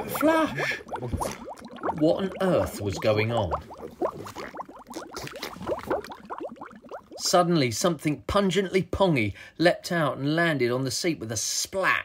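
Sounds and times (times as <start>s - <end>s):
liquid bubbling and gurgling: 0.0s - 7.7s.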